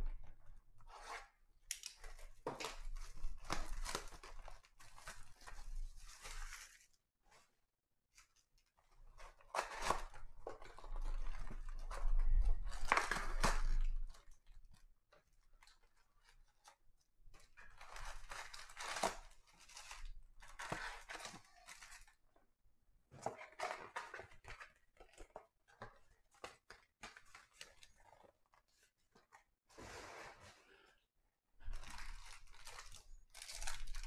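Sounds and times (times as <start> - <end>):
card packs rustling and crinkling: 1.8 - 6.9, 8.2 - 16.6, 17.4 - 22.2, 23.2 - 29.4, 31.6 - 34.0.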